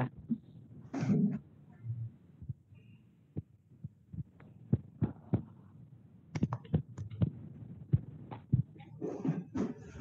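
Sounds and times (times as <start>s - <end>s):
faint low background noise: 0.0s - 10.0s.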